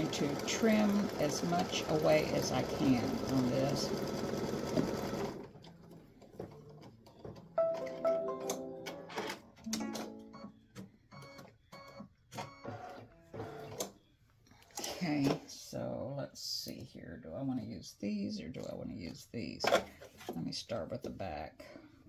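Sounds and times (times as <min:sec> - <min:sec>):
embroidery machine stitching: 0:00.0 - 0:06.9.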